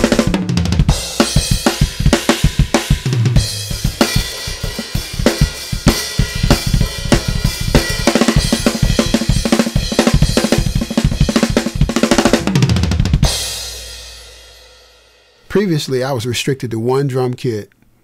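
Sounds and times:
finger-drummed drum samples: 0:00.0 - 0:14.4.

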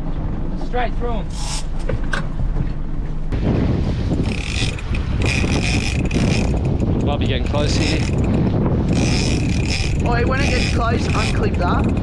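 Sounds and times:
boat engine rumble: 0:00.0 - 0:12.0
wind on microphone: 0:01.2 - 0:12.0
fishing reel clicker buzzing: 0:04.2 - 0:07.0, 0:07.6 - 0:12.0.

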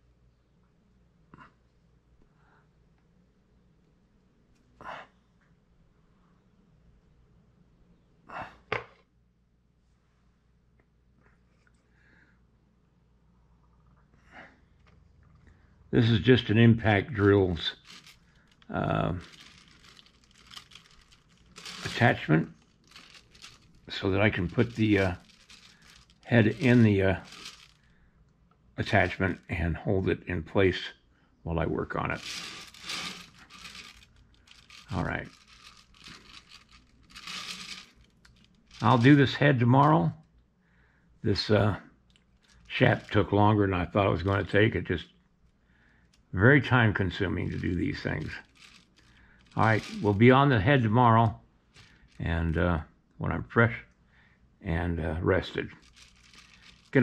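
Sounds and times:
faint rustle: 0:17.2 - 0:28.1, 0:32.1 - 0:40.0, 0:47.5 - 0:50.3, 0:51.7 - 0:52.3, 0:55.5 - 0:57.0.

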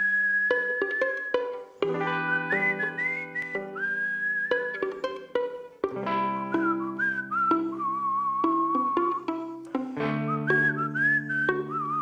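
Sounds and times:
person whistling a melody: 0:00.0 - 0:05.0, 0:06.5 - 0:09.6, 0:10.2 - 0:12.0
guitar chords: 0:00.6 - 0:12.0.

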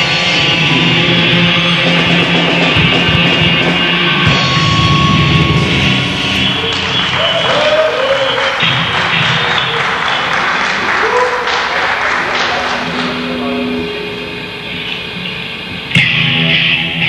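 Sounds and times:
heavy metal band playing live: 0:00.0 - 0:10.4, 0:12.7 - 0:17.0
audience applause: 0:06.4 - 0:13.4.

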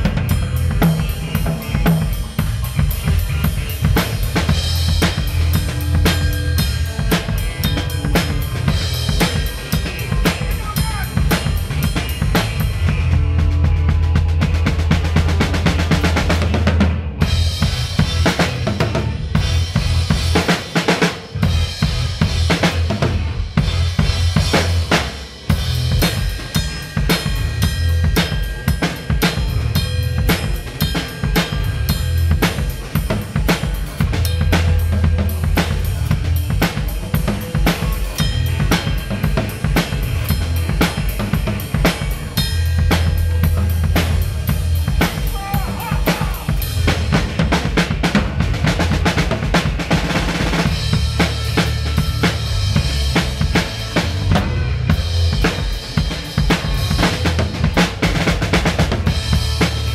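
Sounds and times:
drum kit funk groove: 0:00.0 - 0:59.9.

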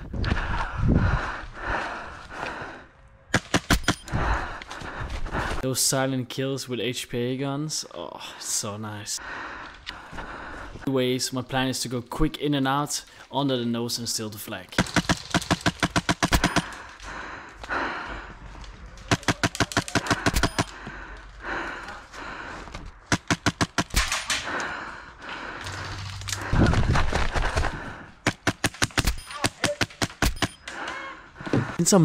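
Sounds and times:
airsoft rifle firing rapid bursts: 0:14.8 - 0:16.7.

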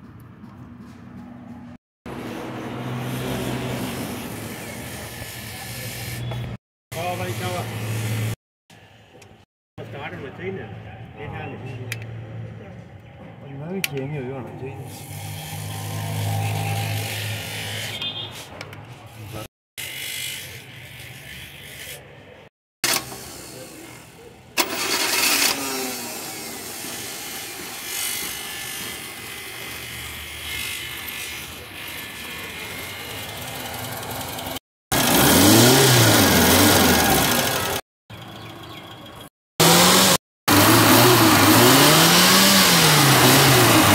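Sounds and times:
engine revving: 0:02.1 - 0:05.0, 0:14.9 - 0:18.0, 0:24.6 - 0:37.8, 0:39.6 - 0:43.9.

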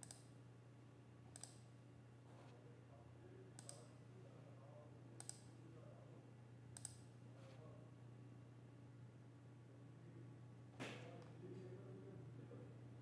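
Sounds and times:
faint computer mouse clicks: 0:00.0 - 0:00.3, 0:01.3 - 0:01.6, 0:03.6 - 0:03.9, 0:05.2 - 0:05.5, 0:06.8 - 0:07.0
low steady hum: 0:00.0 - 0:13.0.

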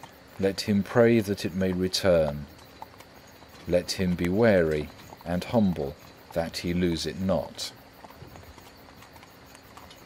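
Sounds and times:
faint horse hooves clip-clopping: 0:00.0 - 0:10.0.

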